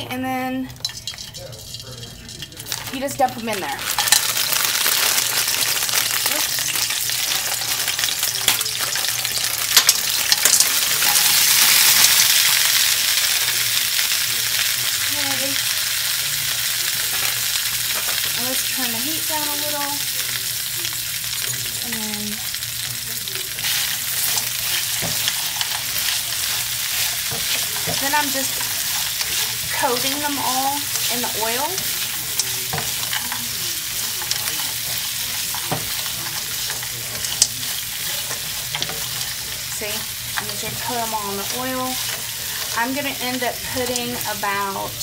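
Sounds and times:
frozen pods sizzling in oil: 0:00.0 - 0:45.0
ice spitting in oil: 0:00.7 - 0:15.6, 0:19.7 - 0:42.9.

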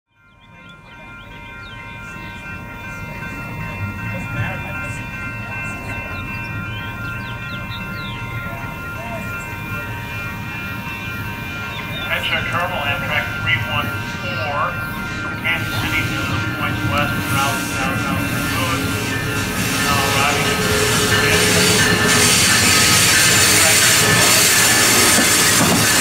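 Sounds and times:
birds chirping: 0:00.1 - 0:26.0.

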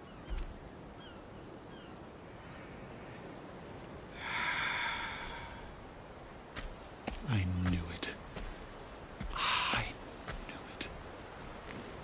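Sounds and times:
outdoor ambience: 0:00.0 - 0:12.0.

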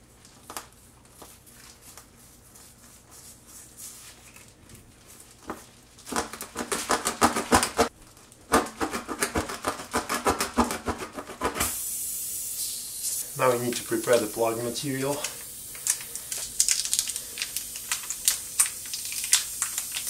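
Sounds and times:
steady hiss: 0:11.6 - 0:20.0.

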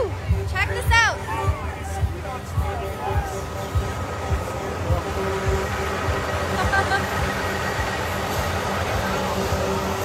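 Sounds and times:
crowded street noise: 0:00.0 - 0:10.0.

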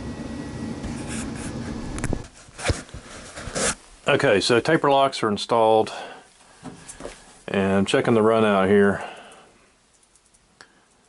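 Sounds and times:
workshop hum: 0:00.0 - 0:04.9
scraping rustle: 0:00.9 - 0:04.1.

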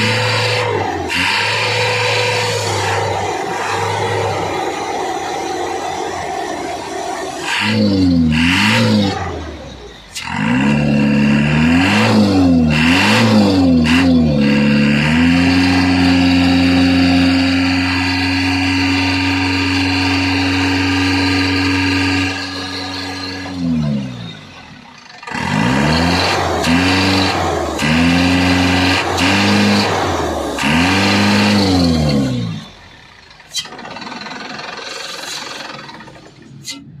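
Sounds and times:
diesel engine revving: 0:00.0 - 0:37.0.

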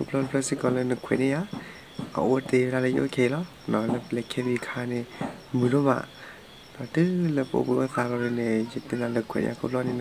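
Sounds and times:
crickets chirping: 0:00.0 - 0:10.0
person speaking: 0:00.0 - 0:10.0.

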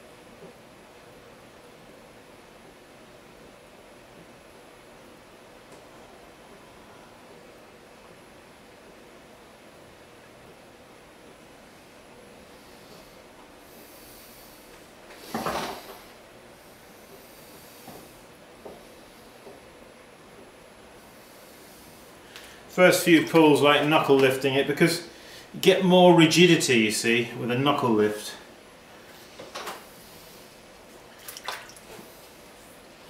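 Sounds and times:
potter's wheel humming: 0:00.0 - 0:31.2.

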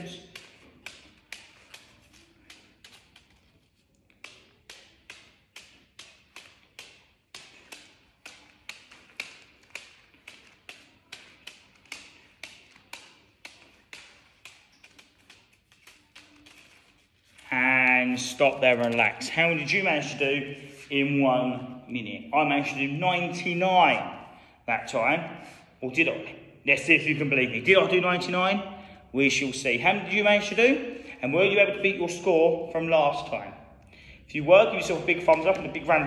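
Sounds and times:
hand tapping paper ball: 0:00.0 - 0:17.4, 0:34.8 - 0:36.0.

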